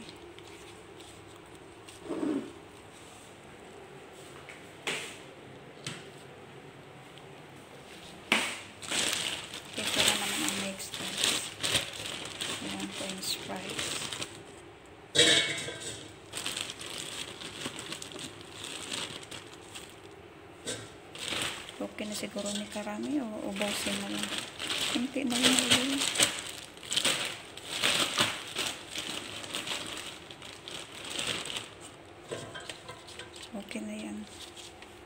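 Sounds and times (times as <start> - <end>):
plastic bag crinkling: 8.6 - 34.8
fries shaken into basket: 21.1 - 31.9.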